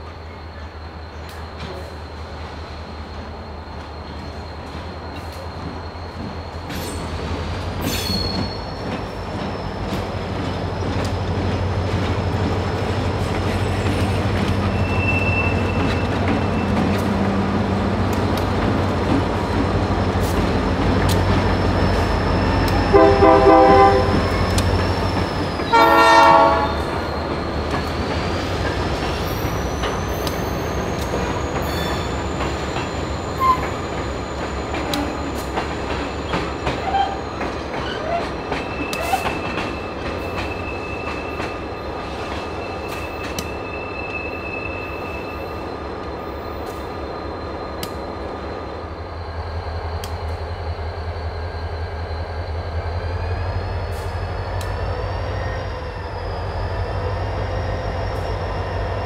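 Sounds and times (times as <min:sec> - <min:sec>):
high-pitched wheel squeal: 0:03.0 - 0:10.1, 0:13.6 - 0:17.2, 0:21.2 - 0:35.4, 0:36.1 - 0:45.8
locomotive horn blasts: 0:22.9 - 0:24.4, 0:25.7 - 0:27.0.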